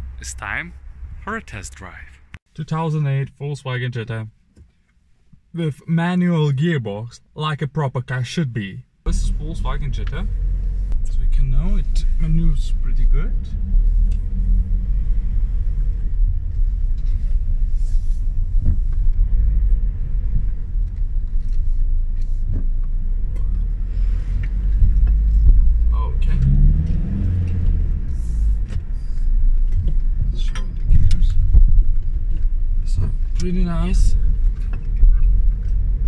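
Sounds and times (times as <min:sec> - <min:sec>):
car engine rumble: 0:00.0 - 0:03.4, 0:08.8 - 0:36.0.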